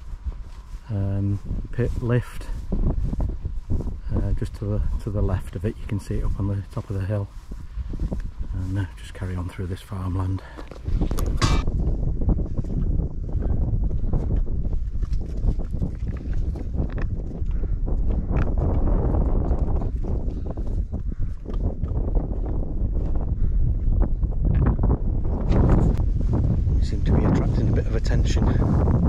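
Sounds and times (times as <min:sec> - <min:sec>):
sheep hooves shuffling and clicking: 0:00.0 - 0:11.6
low rumble: 0:10.9 - 0:29.0.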